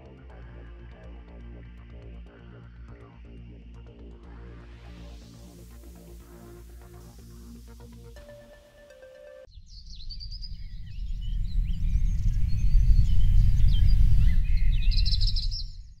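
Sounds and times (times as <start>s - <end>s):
backing music held note: 8.2s - 9.5s
loud low rumbling: 10.5s - 15.4s.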